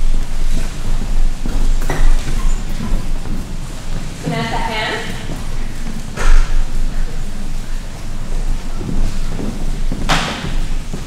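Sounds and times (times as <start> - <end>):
footsteps on stage floor: 0.0 - 11.0.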